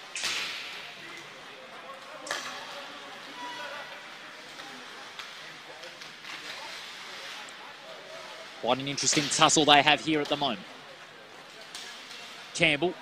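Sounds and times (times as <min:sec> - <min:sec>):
faint echoing voices: 0:00.0 - 0:13.0.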